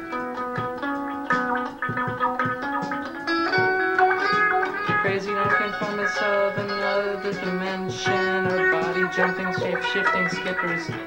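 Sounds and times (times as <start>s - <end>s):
electric guitar single notes: 0.0s - 11.0s.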